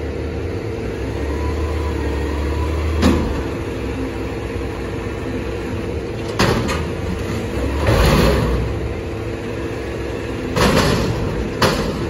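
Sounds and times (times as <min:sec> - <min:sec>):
garbage truck diesel engine revving: 0:00.9 - 0:12.0.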